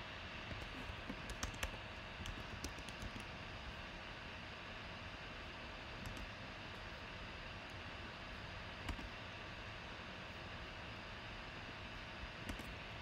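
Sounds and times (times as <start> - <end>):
faint steady hum: 0.0 - 13.0
room and microphone hiss: 0.0 - 13.0.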